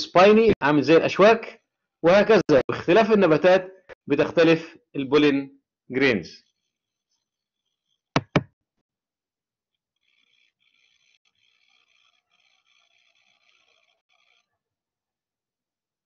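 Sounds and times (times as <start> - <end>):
sharp knocks: 8.2 - 8.5.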